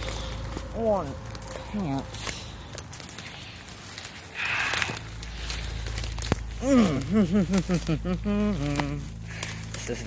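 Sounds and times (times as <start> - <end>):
twigs snapping and crackling: 0.0 - 10.0
weeds rustling: 0.0 - 10.0.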